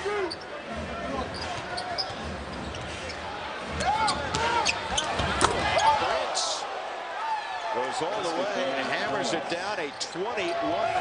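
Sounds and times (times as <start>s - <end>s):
sneakers squeaking: 1.1s - 3.2s, 3.9s - 6.0s.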